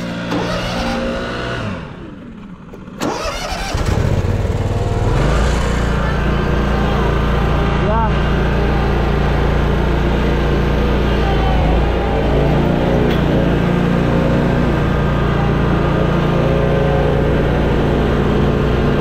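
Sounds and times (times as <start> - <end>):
riding mower engine: 0.0 - 19.0.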